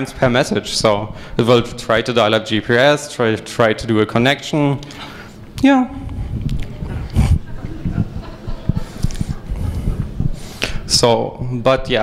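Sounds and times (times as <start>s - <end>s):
lecture hall room noise: 0.0s - 12.0s.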